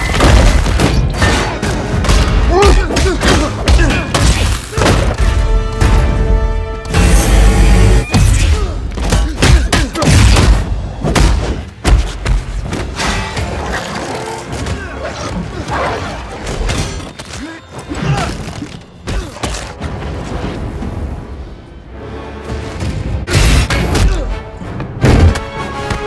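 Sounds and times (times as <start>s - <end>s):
film score music: 0.0s - 26.0s.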